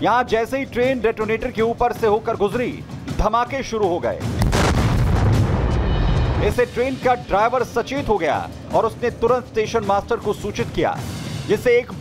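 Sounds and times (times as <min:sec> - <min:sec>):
explosion booms: 0:04.4 - 0:06.6.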